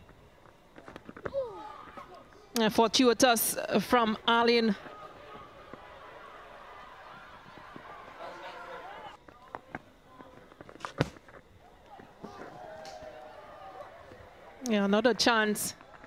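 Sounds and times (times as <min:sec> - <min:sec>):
players shouting: 0:03.9 - 0:10.5, 0:11.6 - 0:16.0.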